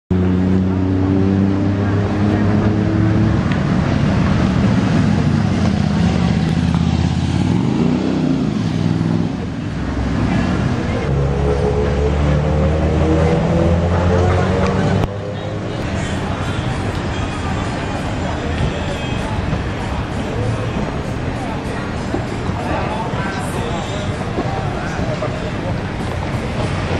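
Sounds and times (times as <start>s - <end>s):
engine revving up: 0.1s - 16.0s
motorbike passing close: 0.1s - 16.4s
street traffic engines: 0.1s - 26.9s.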